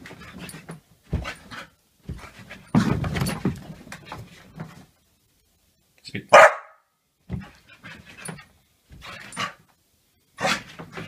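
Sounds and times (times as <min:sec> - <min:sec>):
dog barking: 0:06.3 - 0:06.9.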